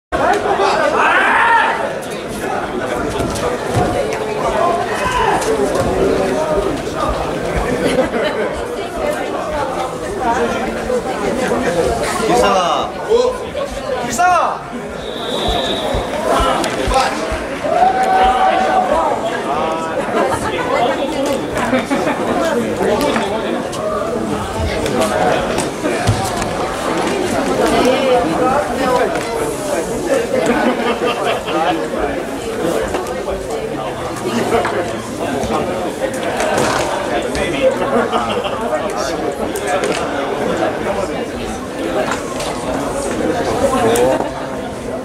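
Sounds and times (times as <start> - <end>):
chatter echoing in a hall: 0.1 - 45.0.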